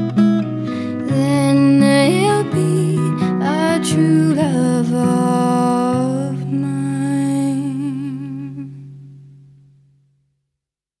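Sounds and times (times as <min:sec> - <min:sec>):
acoustic guitar chord: 0:00.0 - 0:10.2
woman singing with vibrato: 0:01.0 - 0:08.8.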